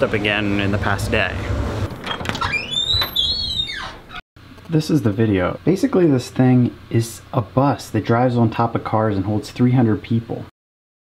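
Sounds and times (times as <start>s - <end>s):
door hinge squeaking: 1.9s - 4.2s.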